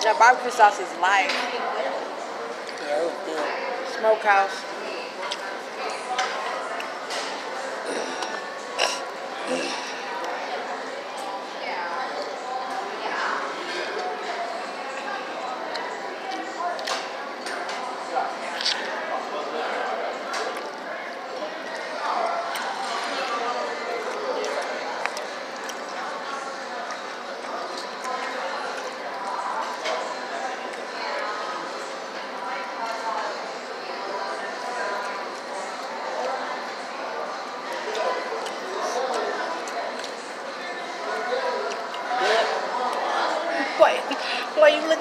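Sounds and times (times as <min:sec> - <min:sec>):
chatter of many voices: 0:00.0 - 0:45.0.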